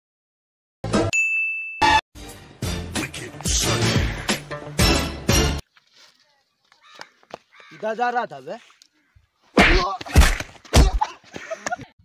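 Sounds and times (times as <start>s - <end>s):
bright bell-like ding: 1.1s - 2.0s.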